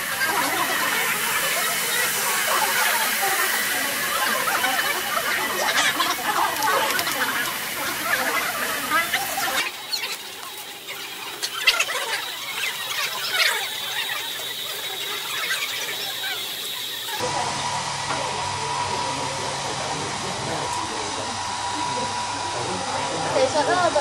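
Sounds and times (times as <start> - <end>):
hair dryer humming: 0.0 - 24.0
thin high whine: 0.0 - 24.0.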